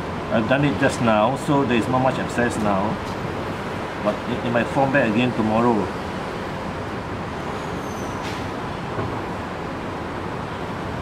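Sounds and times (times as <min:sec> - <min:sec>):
rumble and hiss: 0:00.0 - 0:11.0.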